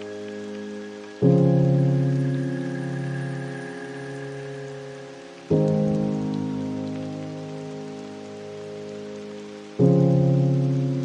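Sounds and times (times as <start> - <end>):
faint steady hiss: 0.0 - 11.0
piano chords: 0.0 - 11.0.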